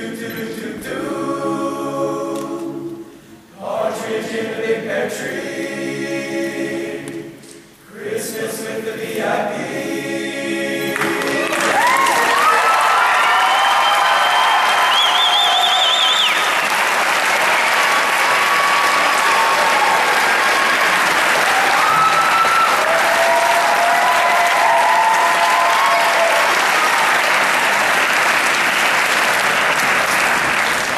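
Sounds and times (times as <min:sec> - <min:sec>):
choir singing final chord: 0:00.0 - 0:12.6
audience applauding: 0:11.0 - 0:30.9
shrill gliding whoops: 0:11.6 - 0:16.4, 0:18.3 - 0:27.0.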